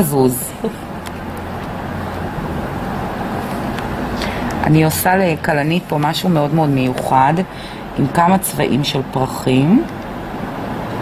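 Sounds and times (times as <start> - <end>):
steady rushing noise: 0.8 - 11.0.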